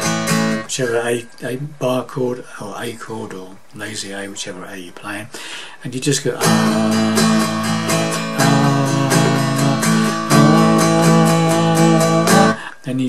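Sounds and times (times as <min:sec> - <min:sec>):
acoustic guitar strumming: 0:00.0 - 0:01.3, 0:06.4 - 0:12.7.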